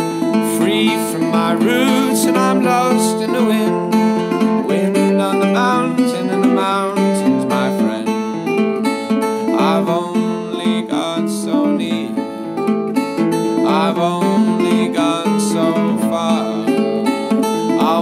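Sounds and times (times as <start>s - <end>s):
acoustic guitar strumming: 0.0s - 18.0s
man singing: 0.0s - 18.0s.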